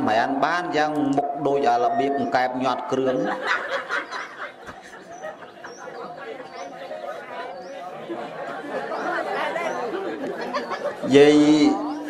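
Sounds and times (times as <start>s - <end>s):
overlapping chatter: 0.0s - 12.0s.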